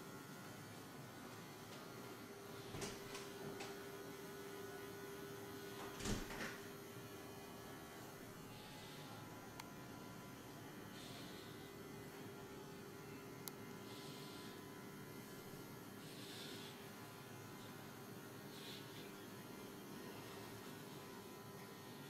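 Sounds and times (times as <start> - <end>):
low electrical hum: 0.0 - 22.0.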